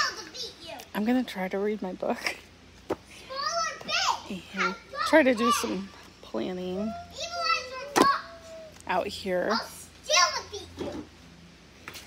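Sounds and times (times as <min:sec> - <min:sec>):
girls calling out: 0:03.2 - 0:06.0, 0:06.6 - 0:10.7.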